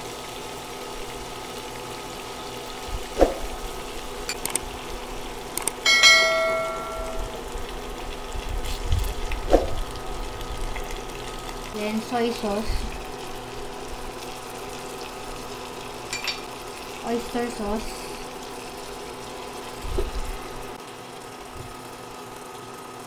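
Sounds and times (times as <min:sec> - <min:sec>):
food sizzling in hot oil: 0:00.0 - 0:23.0
clicks: 0:05.6 - 0:05.8
ringing notification chime: 0:05.9 - 0:07.4.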